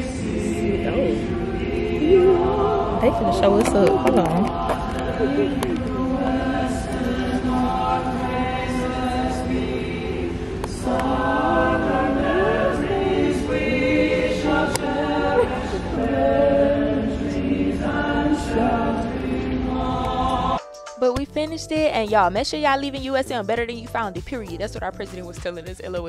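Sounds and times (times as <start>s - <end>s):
mixed choir singing a cappella: 0.0s - 20.6s.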